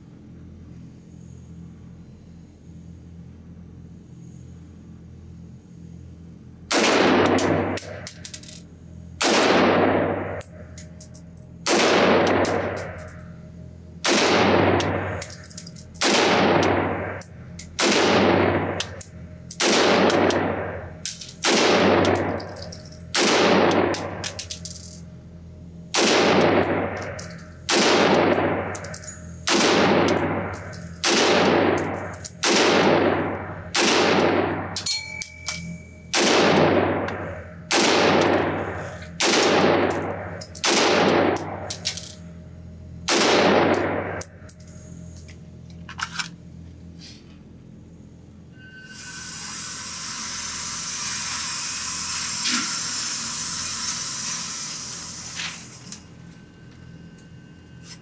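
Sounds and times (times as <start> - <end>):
pistol gunshots echoing indoors: 6.7 - 8.0, 9.2 - 10.5, 11.6 - 13.2, 14.0 - 15.3, 16.0 - 24.4, 25.9 - 41.7, 43.0 - 44.3
spent brass casings clinking: 7.2 - 8.7, 10.4 - 13.6, 14.2 - 17.9, 21.0 - 25.1, 26.4 - 29.4, 30.0 - 36.8, 37.7 - 42.3, 43.5 - 45.0.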